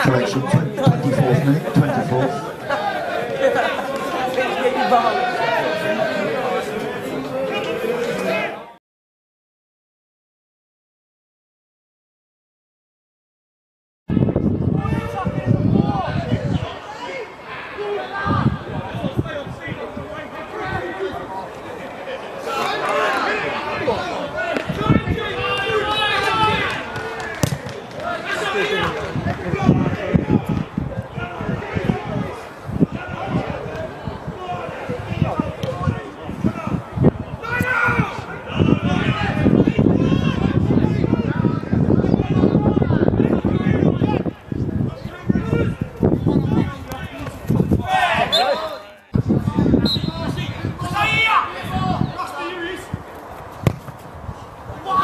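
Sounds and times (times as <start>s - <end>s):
players shouting: 0.0s - 8.6s, 14.8s - 44.3s, 46.4s - 53.8s, 54.6s - 55.0s
ball kicked thuds: 53.6s - 54.1s.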